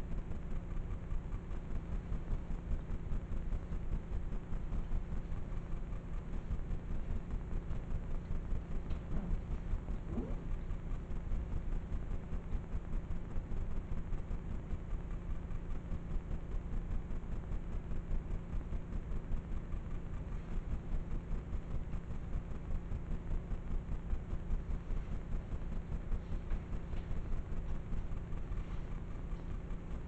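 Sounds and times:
low steady rumble: 0:00.0 - 0:30.0.

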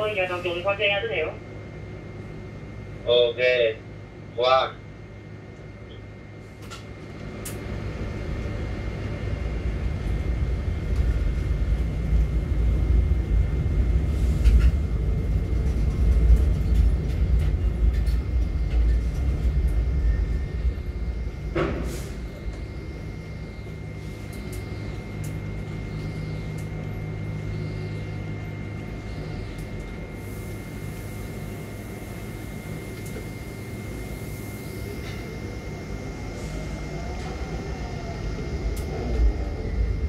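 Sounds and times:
crane machinery rumble: 0:00.0 - 0:40.0.

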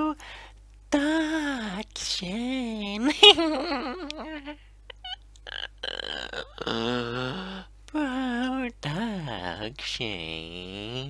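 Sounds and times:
person making silly voice noises: 0:04.9 - 0:08.7.

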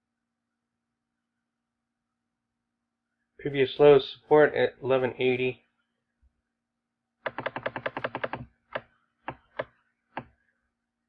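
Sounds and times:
computer mouse clicking: 0:07.2 - 0:10.4.

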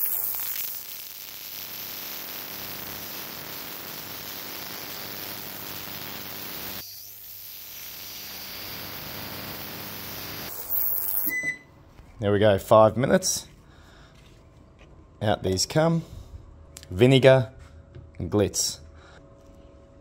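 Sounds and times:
ultrasonic cleaner hissing and buzzing: 0:00.0 - 0:11.3.

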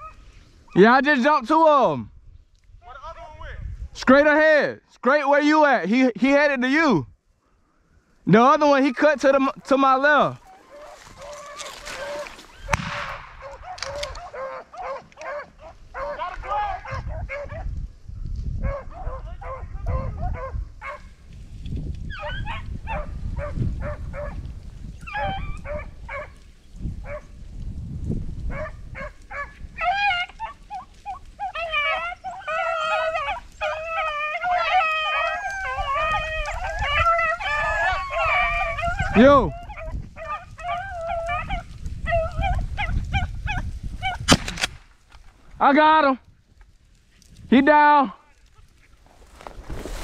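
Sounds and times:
beagles baying: 0:08.8 - 0:17.6, 0:25.0 - 0:26.4, 0:28.5 - 0:44.2.

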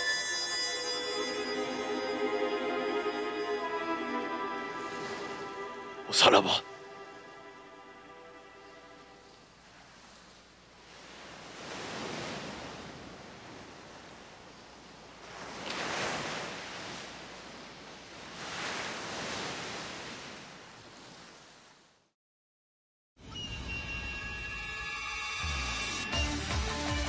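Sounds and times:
sea waves washing onto shore: 0:09.6 - 0:21.9.

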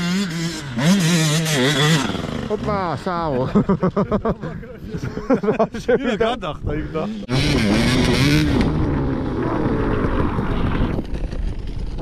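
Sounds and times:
dirt bike engine revving: 0:00.0 - 0:04.0, 0:07.2 - 0:12.0.

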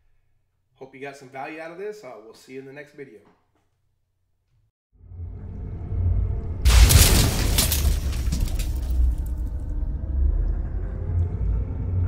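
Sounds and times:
deep low rumble: 0:05.1 - 0:12.0
crashing impact: 0:06.7 - 0:09.6.

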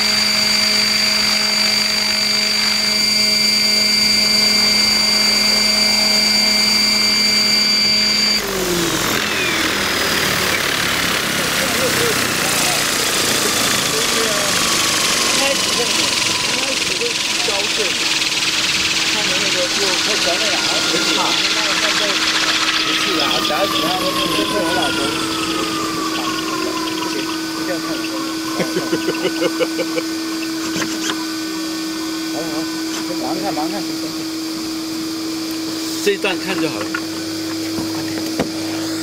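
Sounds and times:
faint high whine: 0:00.0 - 0:10.7, 0:11.5 - 0:39.0
small engine running: 0:00.0 - 0:39.0
small motor humming: 0:00.0 - 0:39.0
indistinct voices talking: 0:02.8 - 0:35.0.

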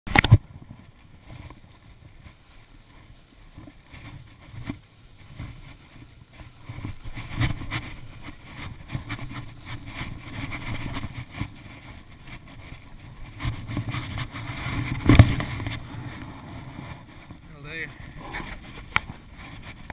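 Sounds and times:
low wind rumble on microphone: 0:00.1 - 0:19.9
skis scraping over snow: 0:00.2 - 0:19.9
skier landing thud: 0:14.9 - 0:16.0.

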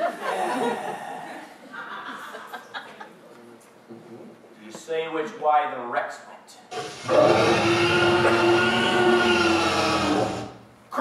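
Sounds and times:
loud raspy cry: 0:07.0 - 0:11.0.

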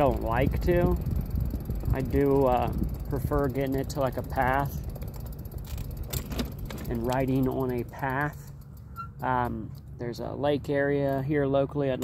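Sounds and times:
electric bike rolling rumble: 0:00.0 - 0:12.0
light clicks and rattles: 0:00.0 - 0:12.0.

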